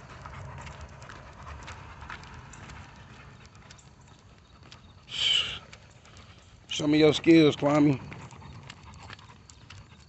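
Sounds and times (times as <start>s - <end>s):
dog claws tapping on pavement: 0.0s - 10.0s.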